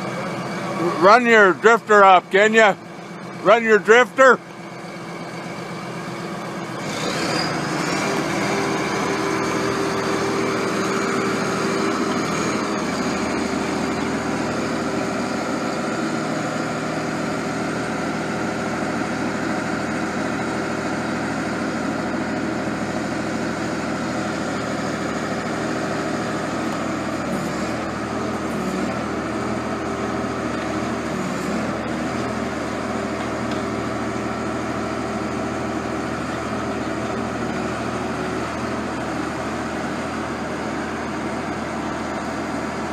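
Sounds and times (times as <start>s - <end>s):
rock drill rig running: 0.0s - 42.7s.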